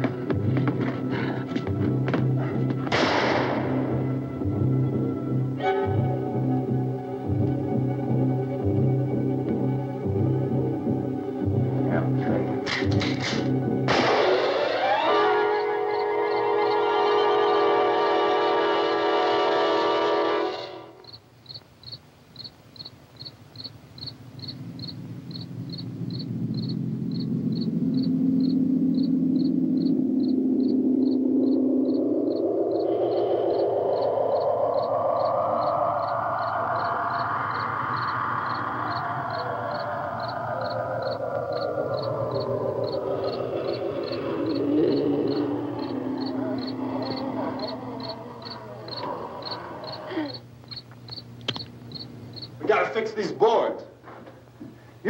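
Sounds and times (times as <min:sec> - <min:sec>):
eerie horror film music: 0:00.0 - 0:21.6, 0:24.0 - 0:52.6
crickets chirping: 0:03.4 - 0:55.0
rising drone: 0:13.3 - 0:21.1, 0:24.6 - 0:52.5.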